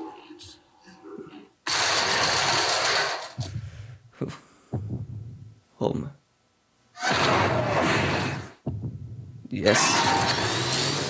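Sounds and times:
deep thuds: 4.7 - 5.6, 7.2 - 9.5.

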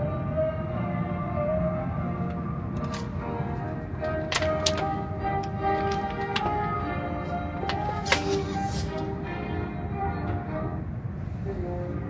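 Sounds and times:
music with sustained notes: 0.0 - 12.0.

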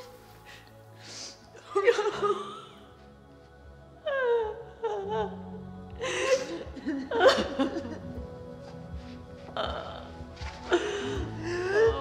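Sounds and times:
sombre orchestral score: 0.0 - 12.0
person sobbing: 1.6 - 2.9, 4.0 - 8.2, 9.5 - 12.0.

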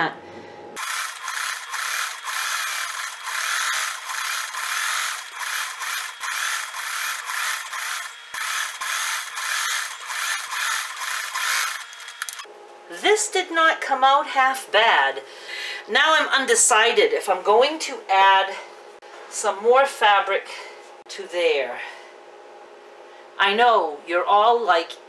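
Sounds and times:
sewing machine stitching: 0.8 - 12.5.

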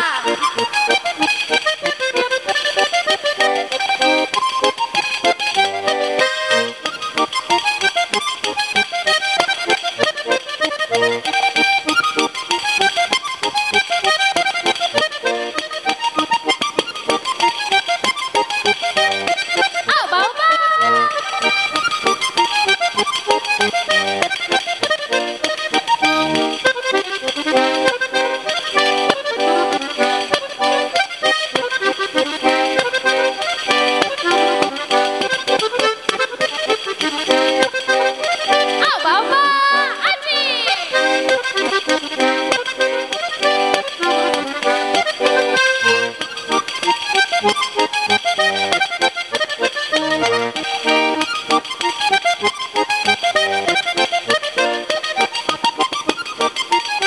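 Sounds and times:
button accordion playing fast tune: 0.0 - 57.0
voice gliding up and down: 19.9 - 21.5, 38.8 - 41.0.

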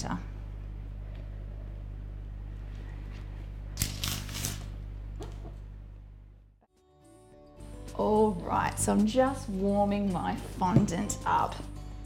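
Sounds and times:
steady low hum: 0.0 - 6.6.

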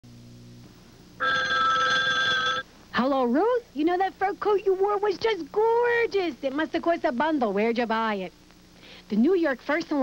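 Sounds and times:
telephone ringing: 1.2 - 2.7.

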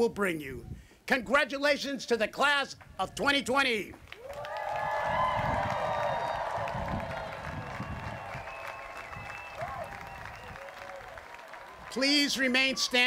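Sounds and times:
crowd applauding: 4.1 - 13.0
crowd cheering: 4.2 - 13.0.

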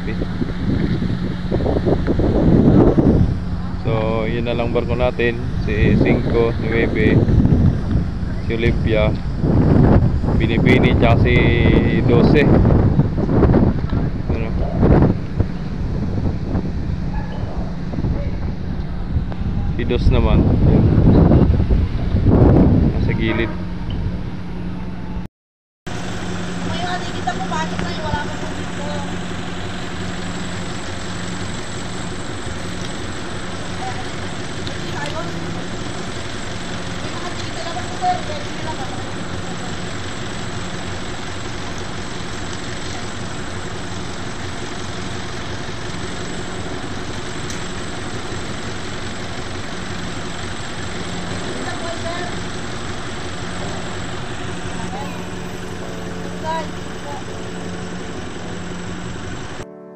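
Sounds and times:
engines idling: 0.0 - 25.1, 25.9 - 59.6
distant voices: 0.0 - 25.2, 25.9 - 59.6.

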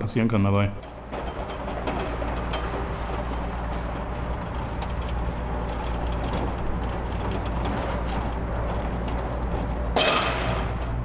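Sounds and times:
roller shutter door rumbling: 0.6 - 11.0
slats clicking and rattling: 0.8 - 11.0.

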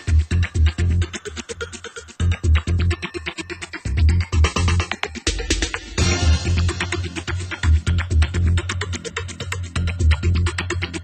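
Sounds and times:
music with deep bass beat: 0.0 - 11.0.

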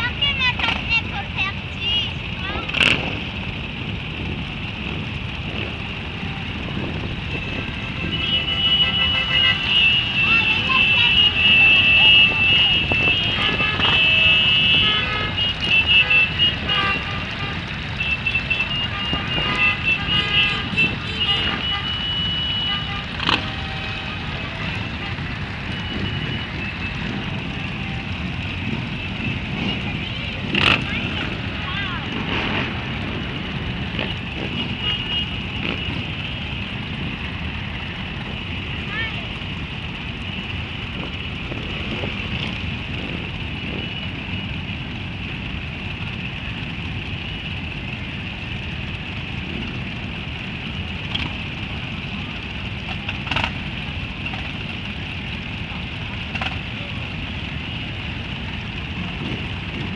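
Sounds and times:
motorcycles idling: 0.0 - 59.9
motorcycle horns tooting: 5.5 - 59.9.

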